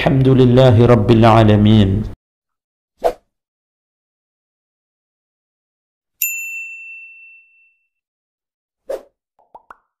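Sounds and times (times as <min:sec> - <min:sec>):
bright ding: 0:06.2 - 0:07.9.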